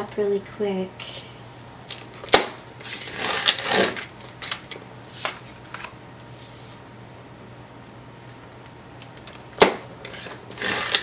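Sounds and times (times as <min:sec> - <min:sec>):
blade scraping through card: 0:10.1 - 0:11.0.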